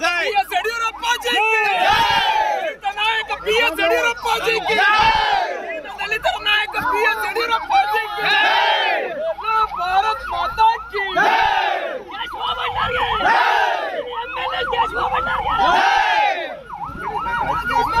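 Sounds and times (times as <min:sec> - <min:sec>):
crowd voices: 0:00.0 - 0:18.0
warbling vehicle siren: 0:00.0 - 0:18.0.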